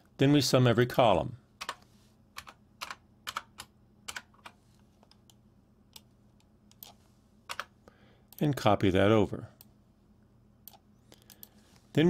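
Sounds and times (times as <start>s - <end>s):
computer keyboard keystrokes: 1.6s - 1.8s, 2.4s - 6.1s, 6.7s - 7.7s.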